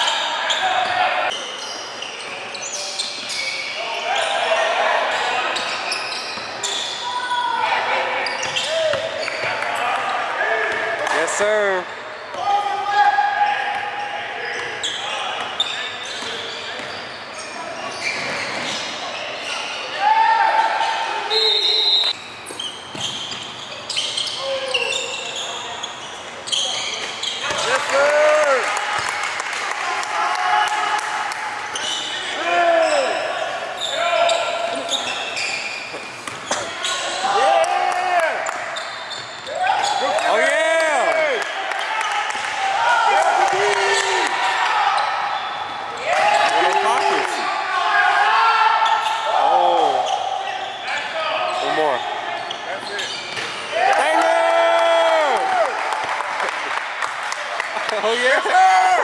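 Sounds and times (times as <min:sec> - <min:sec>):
shoe squeaks: 0:00.0 - 0:04.4, 0:05.2 - 0:07.5, 0:08.1 - 0:09.6, 0:14.4 - 0:19.8, 0:21.3 - 0:27.6, 0:31.7 - 0:37.3, 0:38.7 - 0:40.1, 0:50.0 - 0:53.7.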